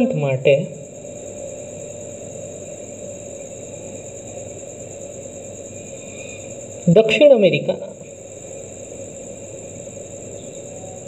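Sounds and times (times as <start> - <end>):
high-pitched whine: 0.0 - 11.0
steady background hum: 0.0 - 11.0.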